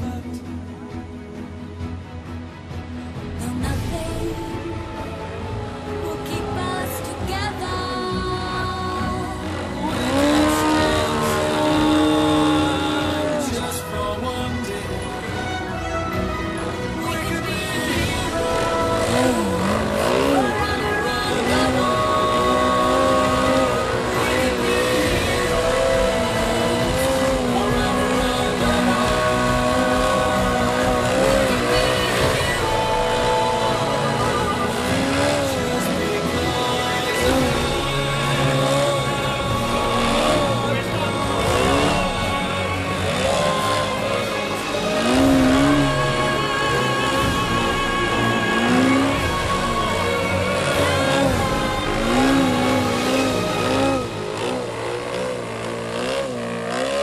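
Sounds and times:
background music: 0:00.0 - 0:57.0
model airplane engine in flight: 0:06.2 - 0:14.3, 0:17.3 - 0:57.0.

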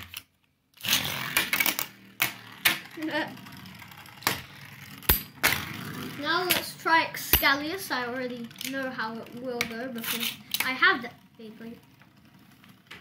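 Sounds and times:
spinning tops clacking together: 0:00.8 - 0:05.9
spinning top ripped off launcher: 0:00.8 - 0:07.6
spinning tops rattling on plastic: 0:00.8 - 0:12.9.

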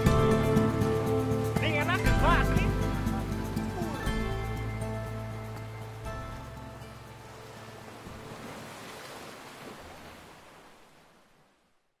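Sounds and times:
waves breaking: 0:03.5 - 0:12.0.

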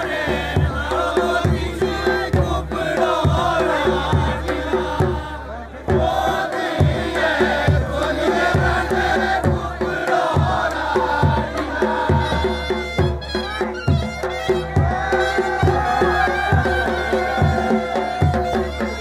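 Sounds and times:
folk dance music: 0:00.0 - 0:19.0.

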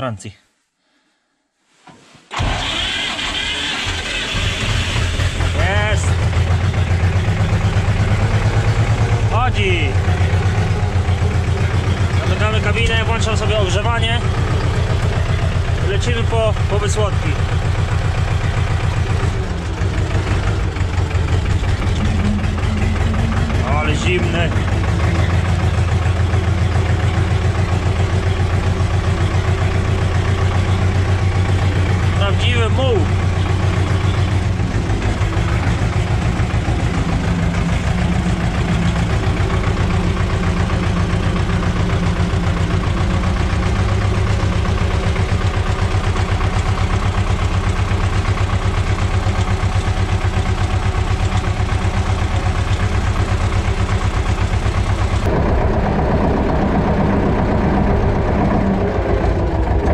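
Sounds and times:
tractor diesel engine running: 0:02.3 - 0:59.9
high curving squeal: 0:20.2 - 0:29.6.

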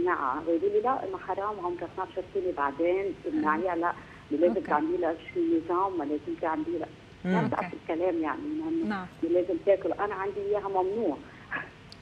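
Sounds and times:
woman talking over telephone: 0:00.0 - 0:11.6.

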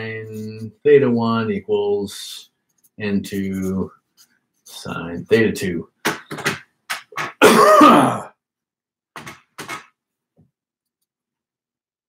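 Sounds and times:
man coughing: 0:07.4 - 0:08.4.

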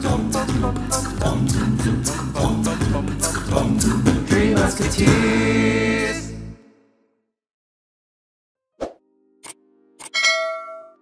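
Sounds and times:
bright bell-like chime: 0:10.1 - 0:11.0.

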